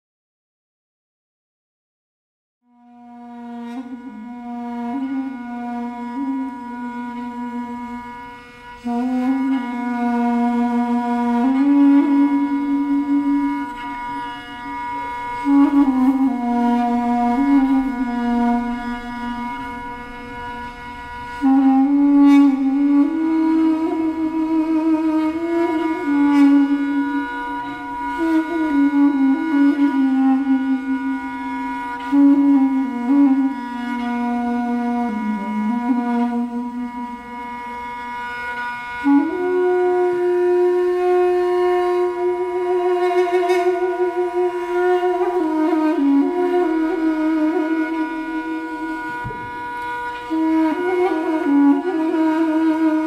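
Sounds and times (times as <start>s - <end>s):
bowed string instrument: 2.6s - 53.0s
duduk and fiddle duet: 2.7s - 53.0s.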